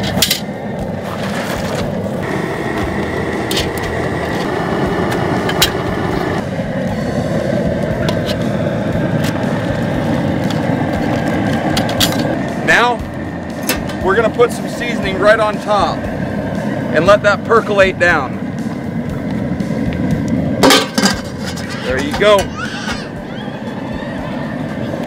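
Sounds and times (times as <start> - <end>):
propane burner running: 0.0 - 25.0
water at a rolling boil: 0.0 - 25.0.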